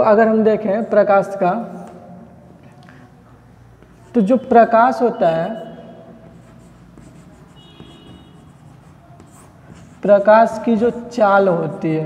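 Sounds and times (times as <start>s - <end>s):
chalk scratching on chalkboard: 5.3s - 12.0s
chalk tapping on chalkboard: 6.2s - 11.8s.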